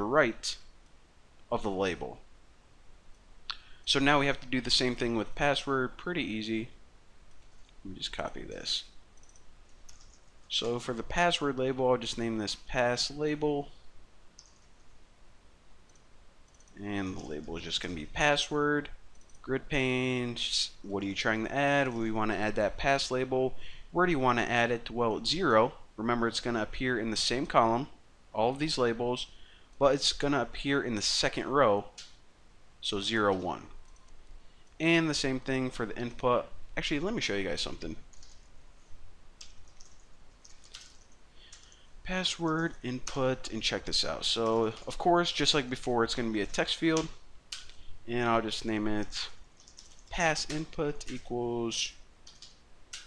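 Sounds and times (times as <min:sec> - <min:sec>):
man talking: 0:00.0 - 0:00.7, 0:01.5 - 0:02.2, 0:03.9 - 0:06.8, 0:07.8 - 0:08.9, 0:10.5 - 0:13.8, 0:16.8 - 0:32.0, 0:32.8 - 0:33.8, 0:34.8 - 0:38.1, 0:42.0 - 0:47.2, 0:48.0 - 0:49.4, 0:50.1 - 0:52.0.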